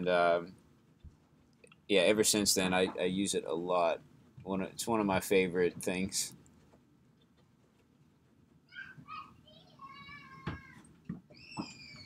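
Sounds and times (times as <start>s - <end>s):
faint high-pitched wavering cries: 8.7s - 12.0s.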